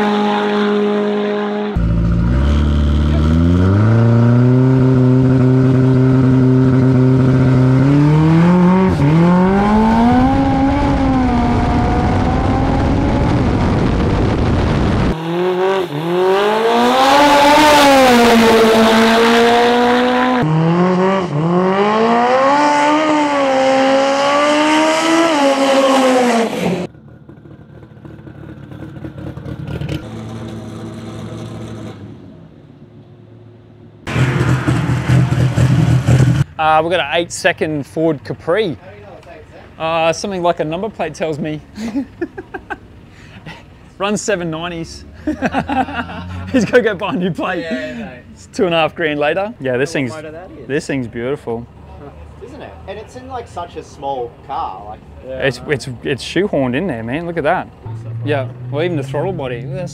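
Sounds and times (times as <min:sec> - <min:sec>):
drag car engine revving and accelerating: 0:00.0 - 0:32.4, 0:34.1 - 0:36.5.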